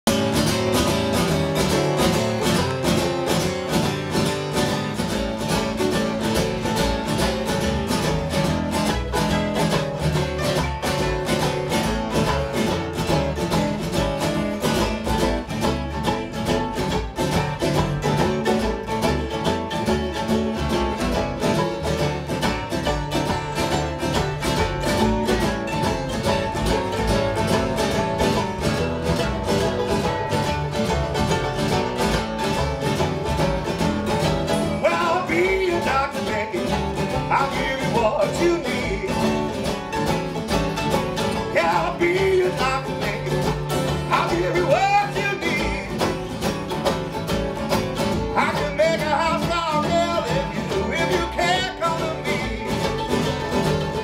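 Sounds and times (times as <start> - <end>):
acoustic guitars strummed: 0.0 - 54.0
washtub bass: 0.0 - 54.0.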